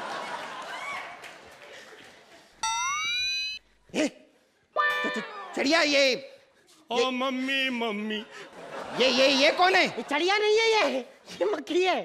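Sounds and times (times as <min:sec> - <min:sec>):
high-pitched rising tone: 0:02.6 - 0:03.6.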